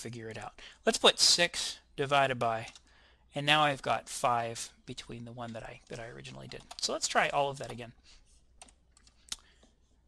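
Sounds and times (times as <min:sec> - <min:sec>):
keyboard and mouse clicks: 0:05.4 - 0:07.9, 0:08.6 - 0:09.8.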